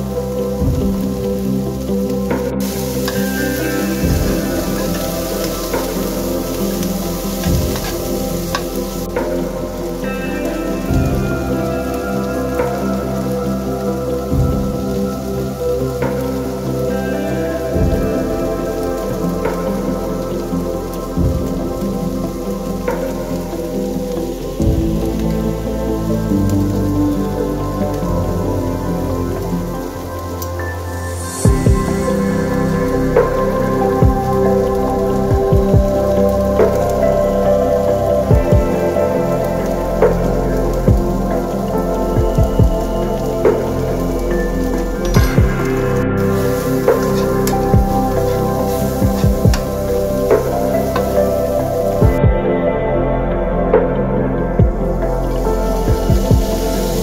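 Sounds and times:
vegetables frying in a pan: 0.0 - 52.1, 55.1 - 57.0
ambient instrumental music: 0.0 - 57.0.

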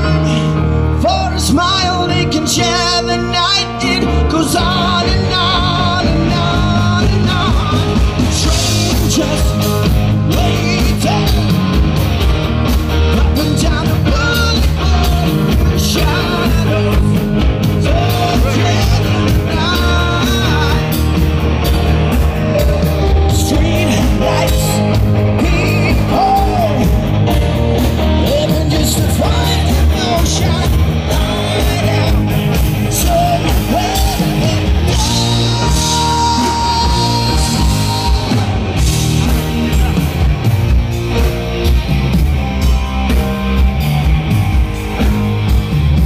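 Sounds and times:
man singing: 0.0 - 11.9, 13.0 - 21.4, 22.1 - 40.6
rock band playing: 0.0 - 46.0.

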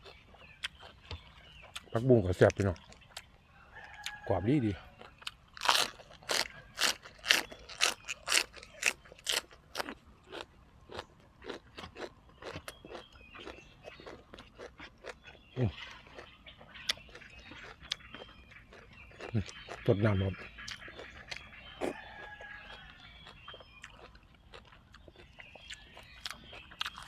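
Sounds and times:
crunchy chewing of raw stems: 0.0 - 27.0.

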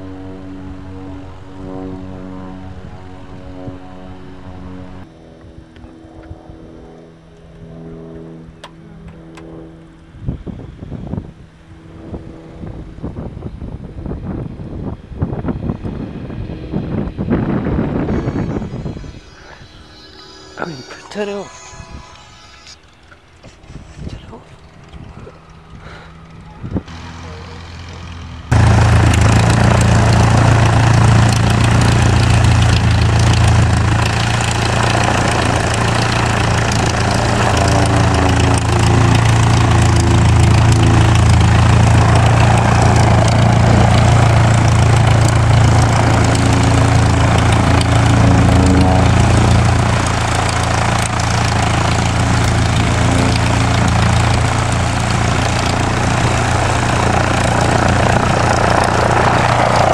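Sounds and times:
piston aircraft engine running: 0.0 - 59.9.

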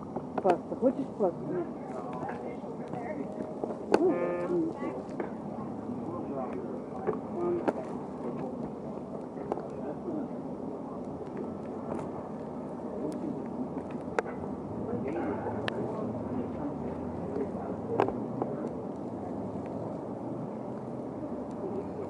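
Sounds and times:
indistinct chatter: 0.0 - 22.0.

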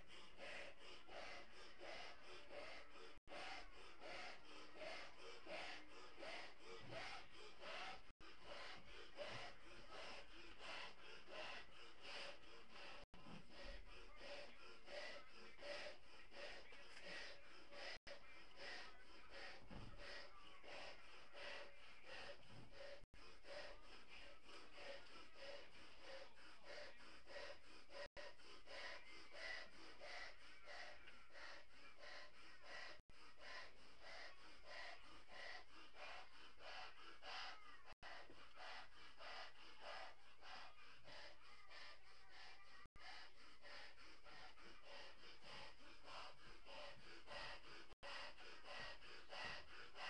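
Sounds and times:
breaths blowing up a balloon: 0.0 - 50.0.

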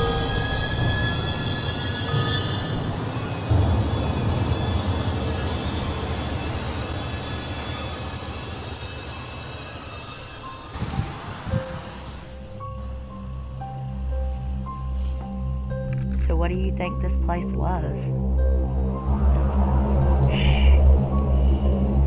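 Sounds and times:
dark rumbling drone music: 0.0 - 22.0.

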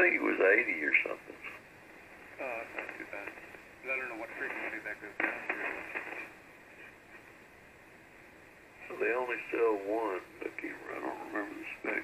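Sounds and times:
radio receiver hiss: 0.0 - 12.0
voice on radio: 2.4 - 6.3, 8.9 - 12.0.

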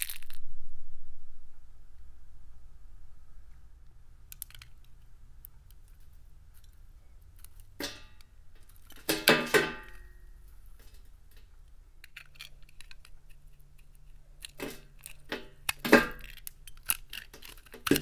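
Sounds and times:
knife cutting crackling soap: 11.4 - 18.0.

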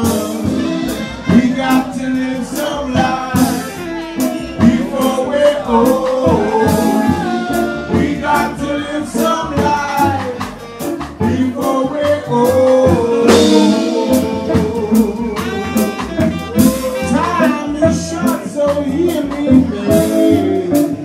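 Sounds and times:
jazz band playing: 0.0 - 21.0.

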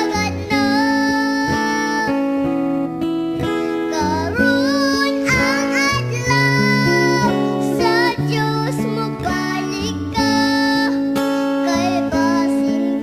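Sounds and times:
person singing: 0.0 - 2.6, 3.4 - 13.0
strummed acoustic guitar: 0.0 - 13.0.

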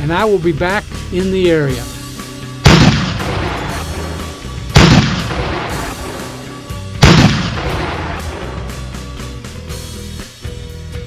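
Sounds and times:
background music: 0.0 - 11.0
loud gunshot-like booms: 2.6 - 6.4, 7.0 - 8.8.

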